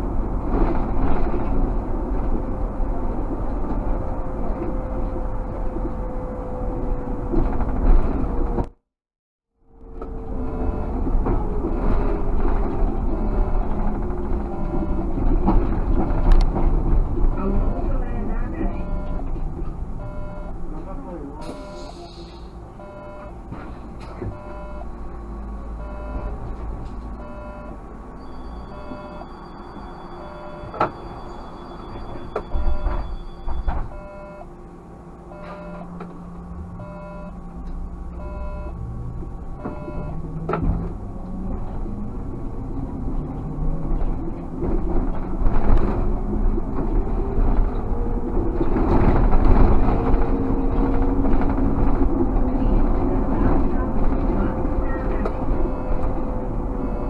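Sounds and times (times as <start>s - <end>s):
road rumble: 0.0s - 57.0s.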